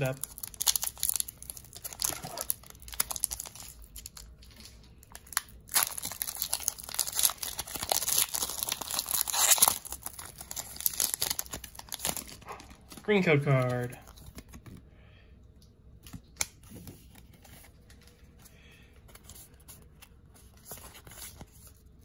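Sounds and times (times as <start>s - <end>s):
foil pack tearing open: 0.0s - 12.4s
foil pack crinkling: 0.0s - 14.6s.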